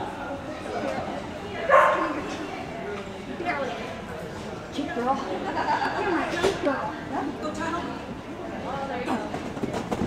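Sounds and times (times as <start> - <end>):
voices in a large hall: 0.0 - 10.0
dog barking: 1.7 - 2.2.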